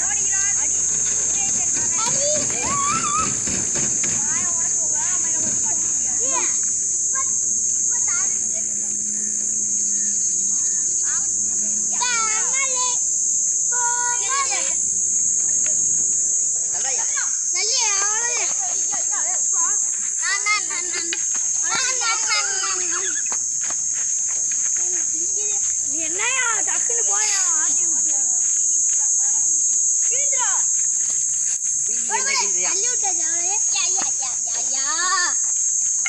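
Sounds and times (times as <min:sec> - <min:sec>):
faint children's voices: 0:00.0 - 0:36.0
high-pitched insect drone: 0:00.0 - 0:36.0.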